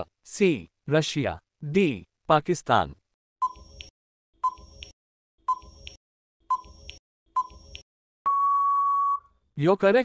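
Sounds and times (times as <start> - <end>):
long steady beep: 8.3 - 9.3.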